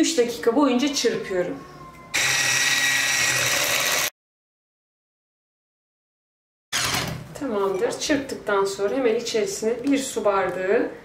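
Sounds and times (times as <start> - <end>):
electric hand mixer whirring: 2.2 - 4.1.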